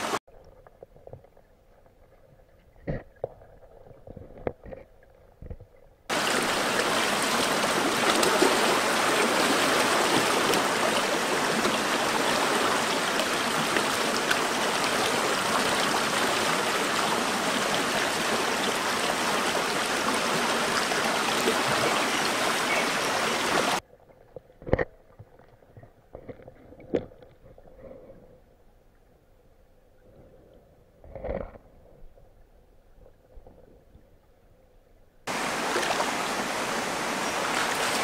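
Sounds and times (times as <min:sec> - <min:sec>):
stream rushing over rocks: 0:00.0 - 0:00.2, 0:06.1 - 0:23.8, 0:35.3 - 0:38.0.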